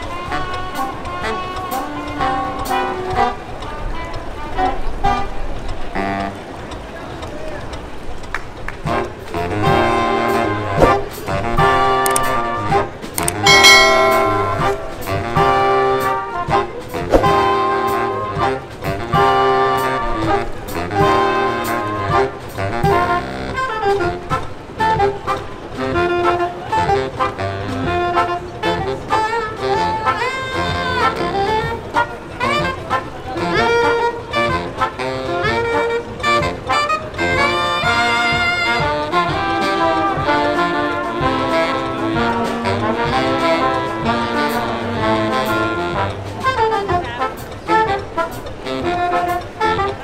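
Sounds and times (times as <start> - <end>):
crowd voices: 0.0 - 50.0
brass band short notes: 8.8 - 50.0
long brass toot: 13.3 - 16.0
low bass line: 13.4 - 15.6.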